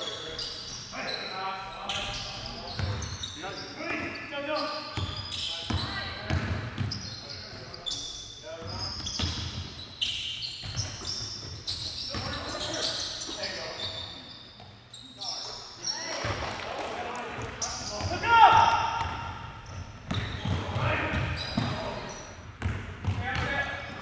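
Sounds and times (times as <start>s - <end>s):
sneakers squeaking: 0.0s - 24.0s
basketball bouncing on court: 2.7s - 3.2s, 5.0s - 7.0s, 8.6s - 9.8s, 10.6s - 12.5s, 17.4s - 24.0s
players' voices echoing: 11.8s - 14.3s, 15.1s - 24.0s.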